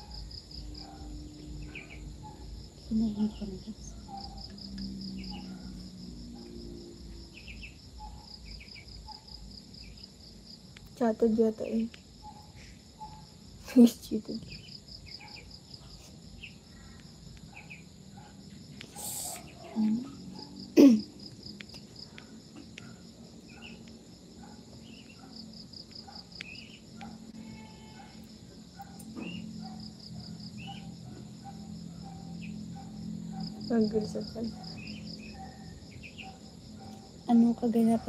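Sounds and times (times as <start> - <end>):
crickets trilling: 0.0 - 38.0.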